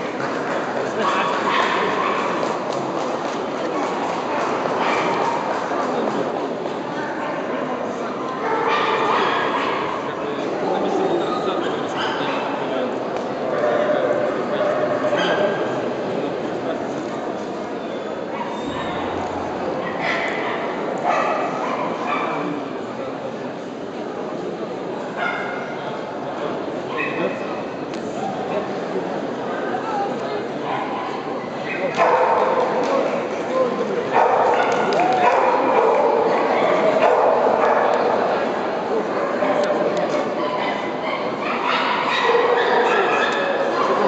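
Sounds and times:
crowd talking: 0.0s - 44.0s
hubbub of voices: 0.0s - 44.0s
dogs barking and yipping: 40.4s - 44.0s.

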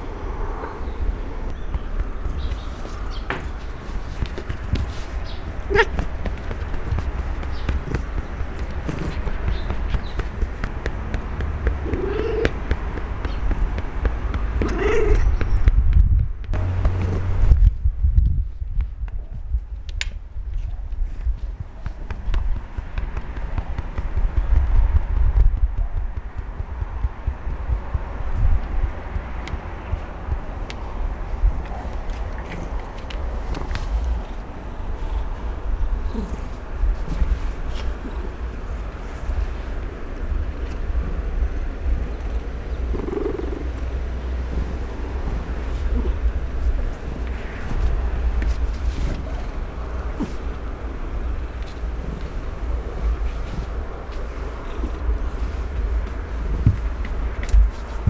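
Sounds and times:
pats on cat low thumps: 1.7s - 34.4s
cat purring: 3.7s - 15.5s, 31.7s - 40.3s, 41.2s - 57.1s.

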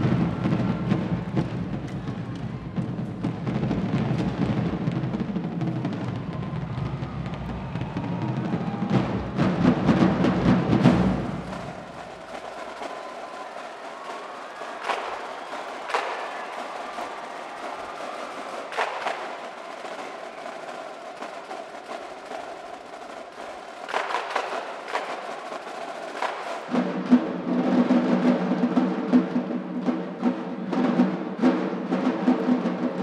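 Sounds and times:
snare drums: 0.0s - 33.0s.

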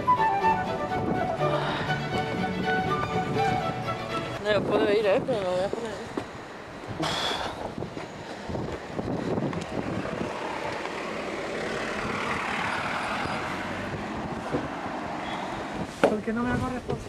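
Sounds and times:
motor vehicle passing: 0.0s - 16.8s.

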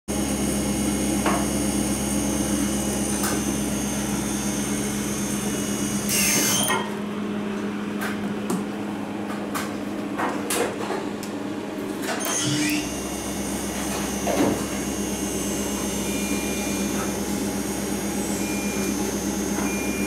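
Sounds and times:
motor hum with high whine: 0.1s - 20.0s.

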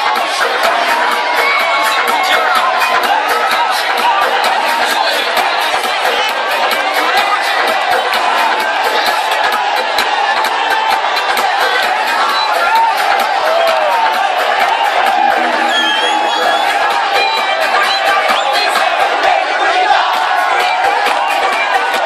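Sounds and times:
crowd shouting and cheering: 0.0s - 22.0s
loud dance music: 0.0s - 22.0s.

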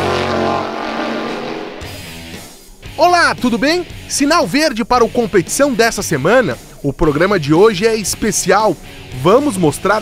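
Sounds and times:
rising engine-like sound effect: 0.0s - 2.5s
rock music chord: 0.0s - 4.2s.

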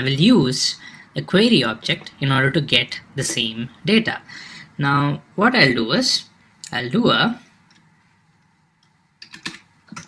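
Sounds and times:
computer keyboard typing: 9.2s - 10.0s.

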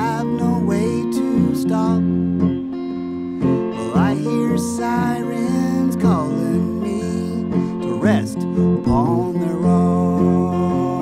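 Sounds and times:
electric guitar playing: 0.0s - 11.0s.

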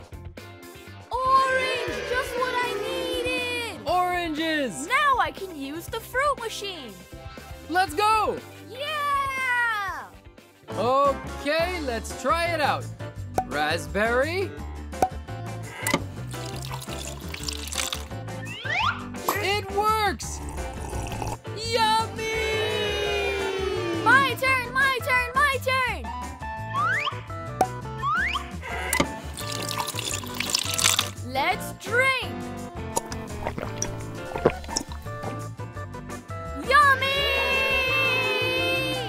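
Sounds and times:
background music: 0.0s - 39.0s
rising whistle-like glide: 1.3s - 3.9s
child drinking from glass: 15.9s - 18.1s, 20.4s - 21.4s, 29.2s - 31.2s, 33.0s - 35.4s
liquid pouring into a glass: 16.2s - 18.1s, 29.3s - 31.2s.

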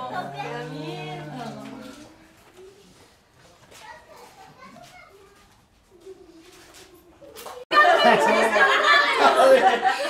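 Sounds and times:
quiet background voices: 0.0s - 7.6s.

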